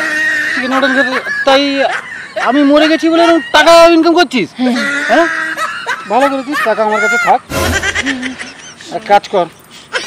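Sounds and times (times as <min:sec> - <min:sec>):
people making wavering snicker sounds: 0:04.6 - 0:09.0
short rough noisy burst: 0:07.5 - 0:08.3.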